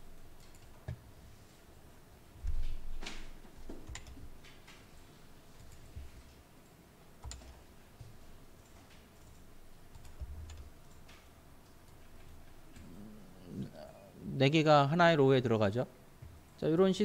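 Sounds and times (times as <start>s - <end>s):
computer keyboard keystrokes: 3.6s - 4.8s, 7.2s - 7.6s, 8.6s - 12.8s.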